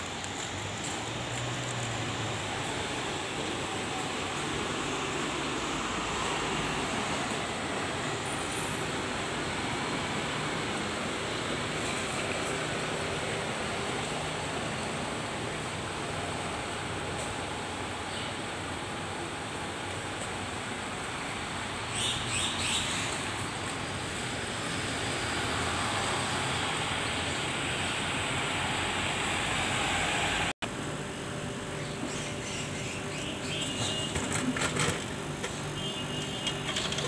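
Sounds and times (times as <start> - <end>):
buses idling and moving: 0.0 - 37.0.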